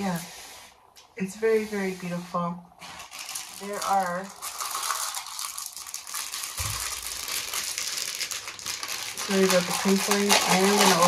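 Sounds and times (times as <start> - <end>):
plastic bag crinkling: 2.8 - 11.0
small beads rattling in bags: 2.9 - 11.0.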